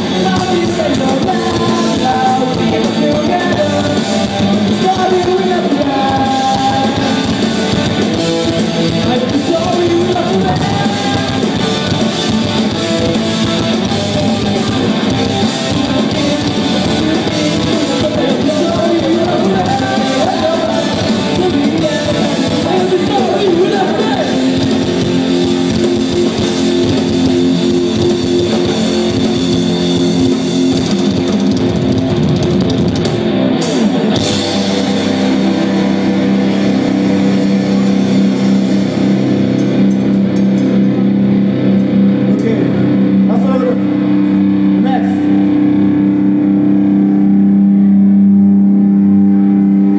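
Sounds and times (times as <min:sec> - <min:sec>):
live rock band with electric guitars: 0:00.0 - 0:49.9.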